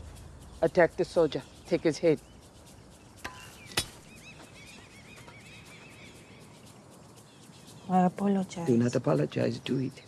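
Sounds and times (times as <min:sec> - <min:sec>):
small birds chirping: 0:00.0 - 0:10.0.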